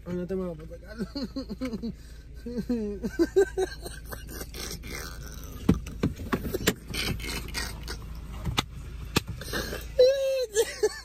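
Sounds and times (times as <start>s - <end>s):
steady low hum: 0.0s - 11.0s
knocks bumps and rustling in a car: 5.6s - 7.6s, 8.2s - 9.5s.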